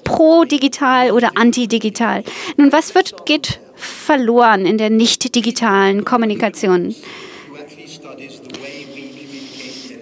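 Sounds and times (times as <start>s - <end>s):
voice-over speech: 0.0s - 6.9s
faint man talking: 7.5s - 10.0s.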